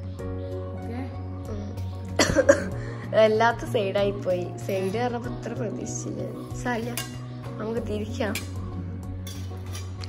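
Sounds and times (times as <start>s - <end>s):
clink on steel plate: 9.2s - 9.9s.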